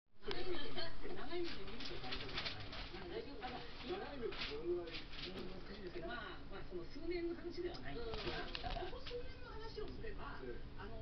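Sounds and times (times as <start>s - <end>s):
muffled talk-show speech on television: 0.2s - 11.0s.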